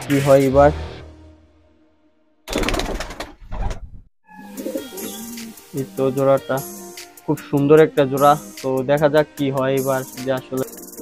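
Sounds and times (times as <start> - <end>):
pigeon cooing: 4.4 - 5.7.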